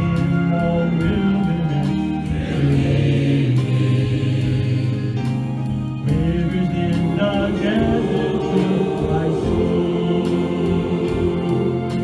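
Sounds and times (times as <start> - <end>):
mixed choir singing: 2.2 - 5.5, 7.1 - 12.0.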